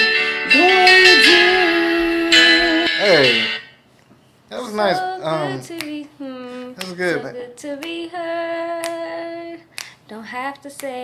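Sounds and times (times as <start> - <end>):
person singing unaccompanied: 0.0 - 3.6, 4.6 - 11.0.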